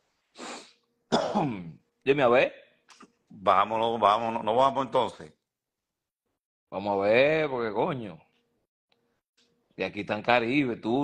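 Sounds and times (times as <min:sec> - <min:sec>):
man coughing: 0:01.1 - 0:01.8.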